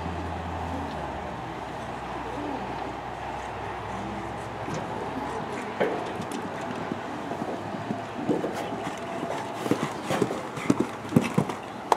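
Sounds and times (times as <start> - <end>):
horse hoofbeats on sand: 5.0 - 11.9.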